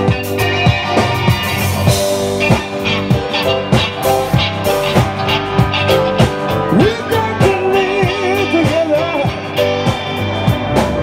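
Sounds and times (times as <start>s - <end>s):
drum kit beat: 0.0s - 11.0s
rock band playing: 0.0s - 11.0s.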